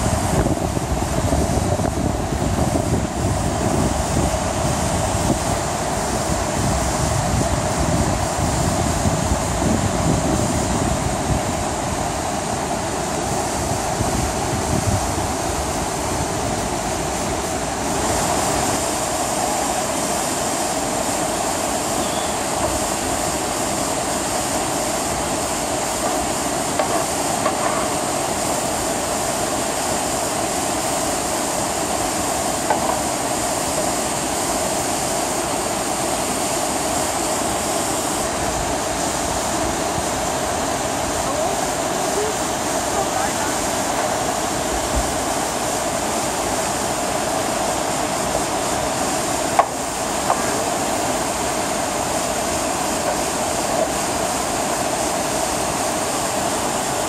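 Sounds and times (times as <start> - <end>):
water rushing down rocky cascade: 0.0 - 57.0.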